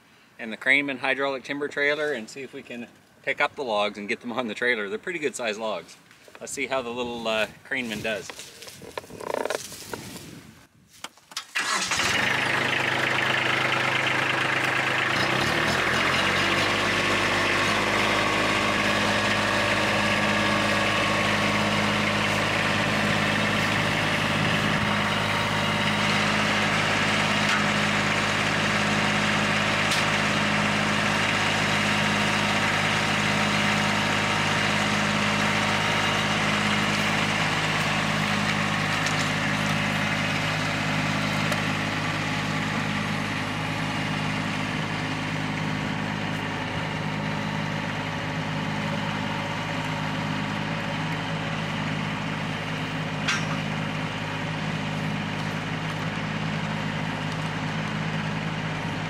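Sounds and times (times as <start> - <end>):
tractor diesel engine running: 6.5 - 10.4, 11.3 - 59.0.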